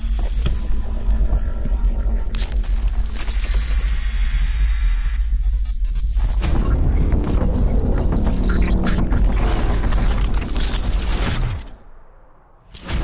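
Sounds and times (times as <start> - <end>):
deep bass drone: 6.3 - 10.5.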